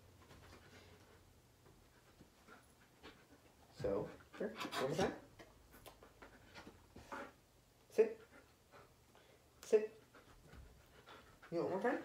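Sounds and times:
faint soft dog sounds: 0.0 - 12.0.

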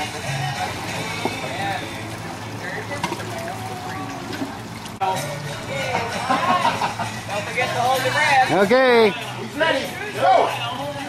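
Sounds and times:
water trickling into pool: 0.0 - 8.4
voices chattering: 0.6 - 11.0.

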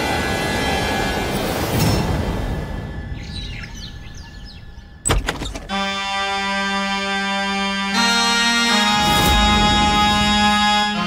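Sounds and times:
birds chirping: 3.0 - 6.1
background music score: 5.7 - 11.0.

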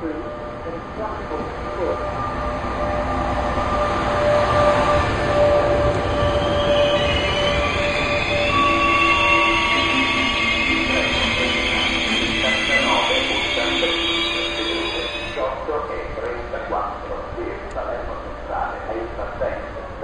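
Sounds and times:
train coaches rumbling past: 0.0 - 20.0
train brakes squealing: 1.8 - 15.5.

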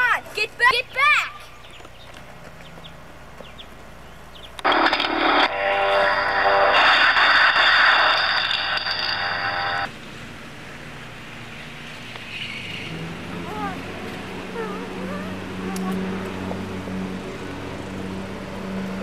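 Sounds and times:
loud electronic buzzing tone: 4.6 - 9.9.

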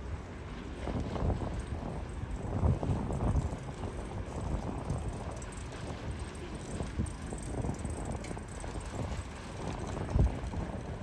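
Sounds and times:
boat motor rumbling: 0.0 - 11.0.

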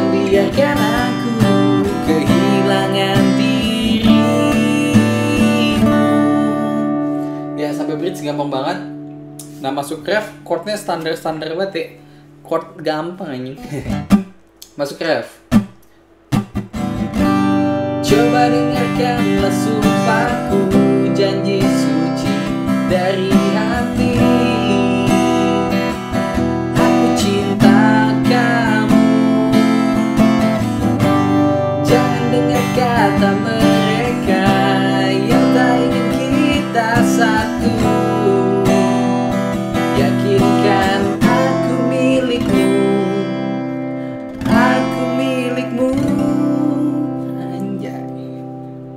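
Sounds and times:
man singing: 0.0 - 7.0, 18.0 - 26.0, 26.6 - 30.6, 31.7 - 43.6, 44.4 - 48.4
acoustic guitar strumming: 0.0 - 14.6, 15.4 - 48.9.

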